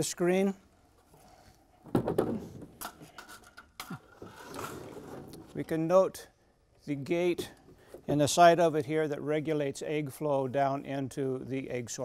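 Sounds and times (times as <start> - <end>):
parts scraping: 1.0 - 5.8.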